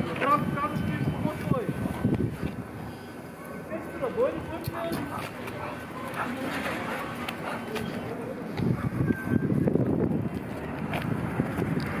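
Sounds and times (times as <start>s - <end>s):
wind rumbling on microphone: 0.0s - 3.0s, 7.8s - 12.0s.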